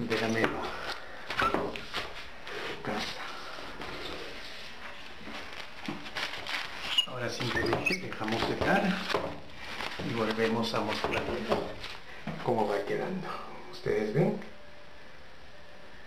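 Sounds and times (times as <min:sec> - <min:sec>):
handling noises and light knocks: 0:00.0 - 0:02.3, 0:04.8 - 0:12.6.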